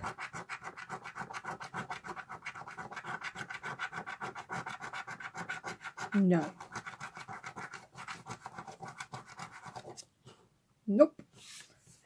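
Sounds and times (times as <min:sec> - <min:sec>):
fingernail scratching scratch card: 0:00.0 - 0:10.1.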